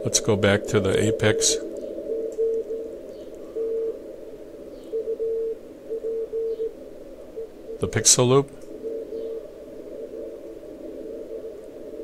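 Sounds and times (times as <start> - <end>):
radio band noise: 0.0 - 9.1
morse code tone: 5.0 - 6.7.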